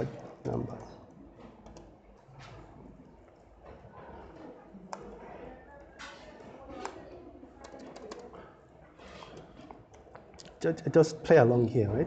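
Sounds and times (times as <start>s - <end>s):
faint keyboard keystrokes: 7.6s - 8.4s.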